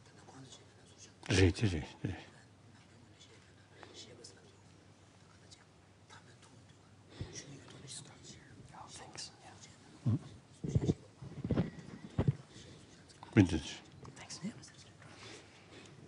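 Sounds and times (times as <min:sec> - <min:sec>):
whispered conversation: 0:00.0 - 0:16.0
murmured words: 0:05.3 - 0:15.1.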